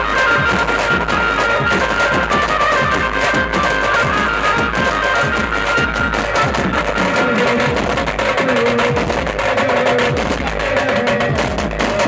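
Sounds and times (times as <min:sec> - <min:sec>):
fast dense drumming: 0:00.0 - 0:12.0
wind instruments melody: 0:00.0 - 0:12.0.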